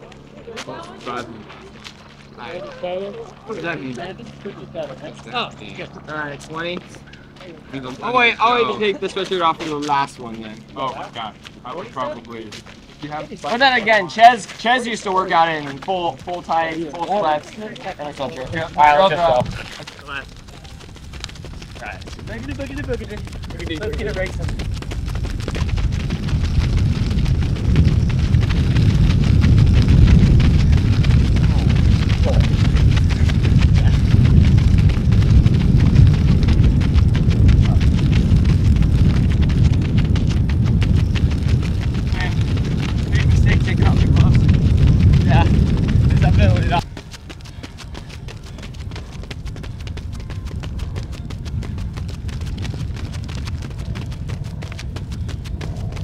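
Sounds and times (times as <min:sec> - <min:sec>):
outdoor background: 0:00.0 - 0:56.0
wind buffeting microphone: 0:00.0 - 0:56.0.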